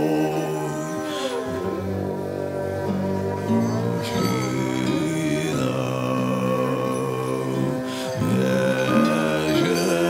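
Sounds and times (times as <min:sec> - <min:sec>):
throat singing drone: 0:00.0 - 0:10.0
whistling overtones: 0:00.0 - 0:10.0.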